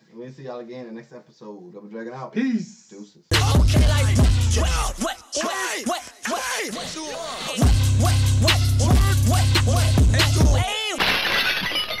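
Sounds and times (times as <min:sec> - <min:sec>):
hip-hop beat with heavy bass: 0:03.3 - 0:11.2
glass shattering effect: 0:11.0 - 0:12.0.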